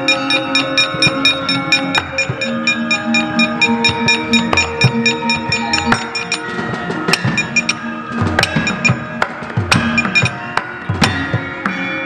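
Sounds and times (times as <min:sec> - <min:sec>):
sharp metallic knocks: 0:00.0 - 0:11.5
metallophone notes: 0:00.0 - 0:12.0.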